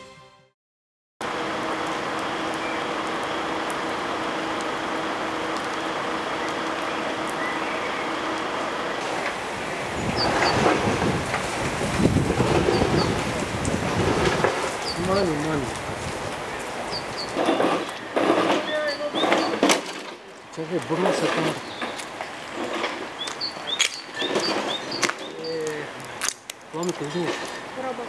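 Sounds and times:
steady outdoor hiss: 1.2s - 28.0s.

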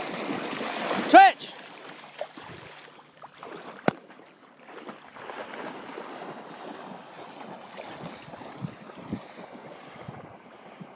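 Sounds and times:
water sloshing and splashing: 0.0s - 10.9s
wind on microphone: 7.2s - 10.9s.

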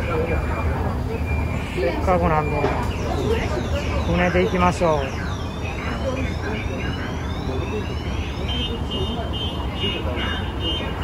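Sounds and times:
high pulsing beep: 0.0s - 11.0s
low train rumble: 0.0s - 11.0s.

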